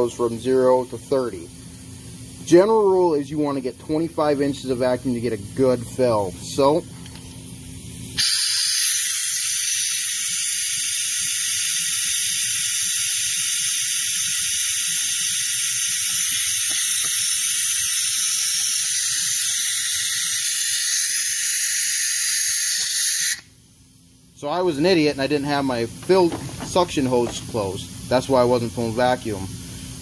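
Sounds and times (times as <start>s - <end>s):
compressed air hissing: 8.2s - 23.4s, 24.6s - 30.0s.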